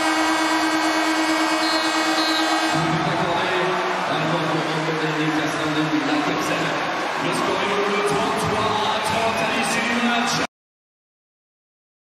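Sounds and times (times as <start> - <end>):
buzzer steady buzzy tone: 0.0 - 2.7.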